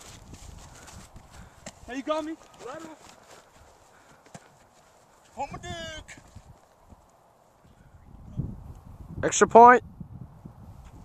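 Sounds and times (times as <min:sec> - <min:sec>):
running footsteps on grass: 0:00.0 - 0:07.2.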